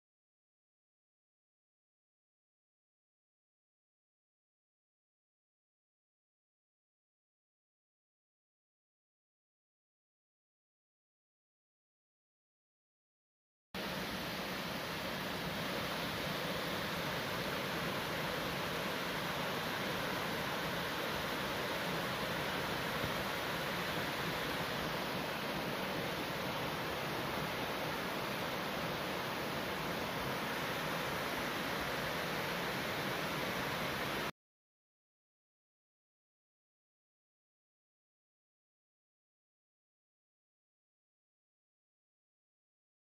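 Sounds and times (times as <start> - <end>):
waterfall rushing over rocks: 13.8 - 34.3.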